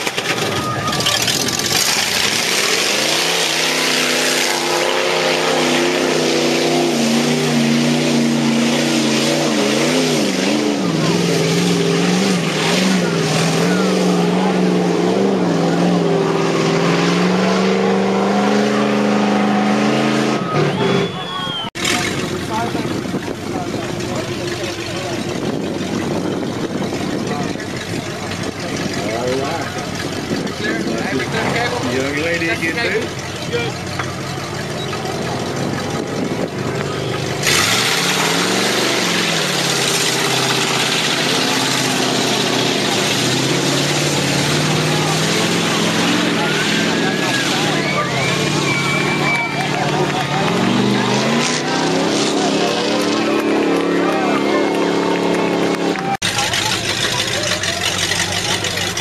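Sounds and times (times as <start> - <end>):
people's voices: 0.0 - 59.0
rough steady engine: 0.0 - 59.0
truck engine revving: 0.0 - 59.0.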